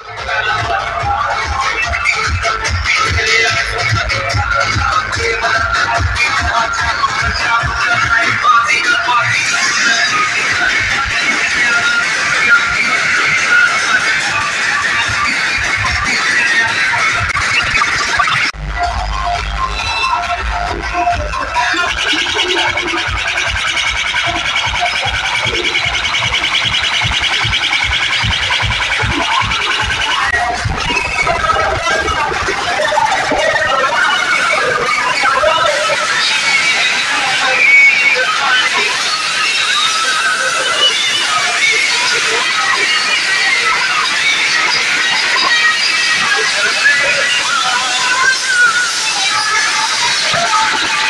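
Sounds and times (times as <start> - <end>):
loud dj music with pulsing bass: 0.0 - 51.0.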